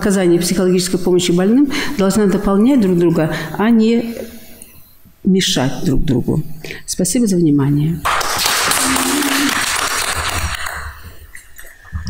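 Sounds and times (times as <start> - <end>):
audience applauding: 8.1 - 11.0.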